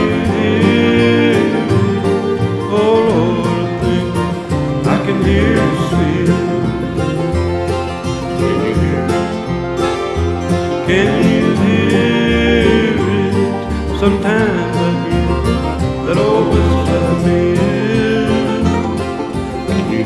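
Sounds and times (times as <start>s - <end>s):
acoustic guitar: 0.0s - 20.0s
banjo: 0.0s - 20.0s.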